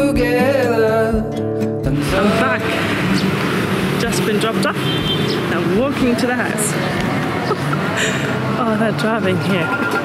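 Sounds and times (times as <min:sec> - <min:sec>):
song with acoustic guitar: 0:00.0 - 0:10.0
traffic: 0:01.7 - 0:10.0
voices: 0:02.0 - 0:10.0.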